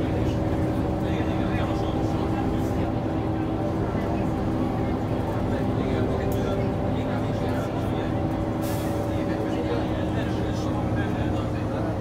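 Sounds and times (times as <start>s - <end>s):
bus diesel engine droning: 0.0s - 12.0s
road noise: 0.0s - 12.0s.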